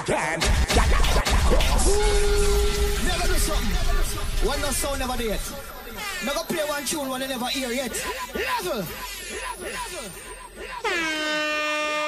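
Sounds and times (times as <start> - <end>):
dancehall music: 0.0 - 11.7
air horn blast: 1.8 - 6.2, 10.8 - 12.0.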